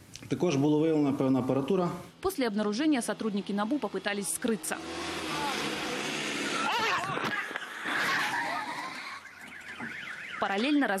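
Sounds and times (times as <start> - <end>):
street noise: 0.0 - 11.0
people's voices: 3.1 - 9.2.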